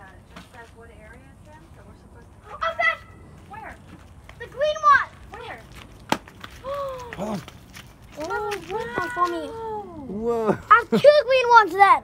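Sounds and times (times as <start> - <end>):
children calling: 2.4 - 3.3, 8.2 - 12.0.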